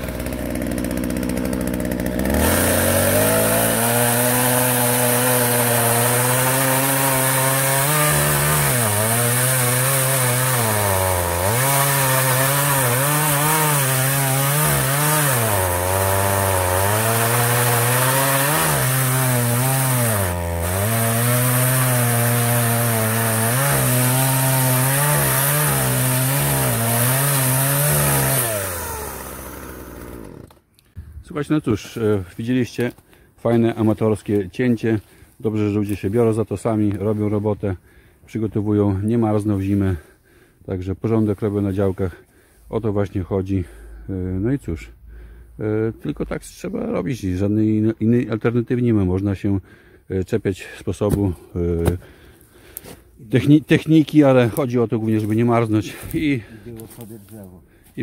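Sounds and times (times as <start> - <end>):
chainsaw cutting through log: 0.0 - 30.9.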